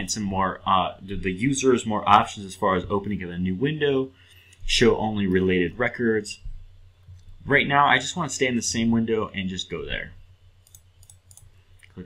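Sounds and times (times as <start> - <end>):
faint mouse clicks: 10.6 - 12.0.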